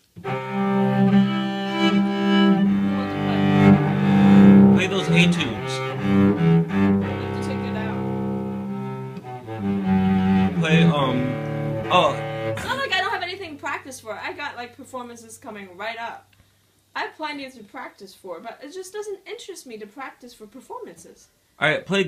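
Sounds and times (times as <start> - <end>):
cello bowed low notes: 0.2 - 14.2
woman speaking: 2.8 - 3.6, 7.1 - 8.0, 12.6 - 16.3, 17.0 - 21.3.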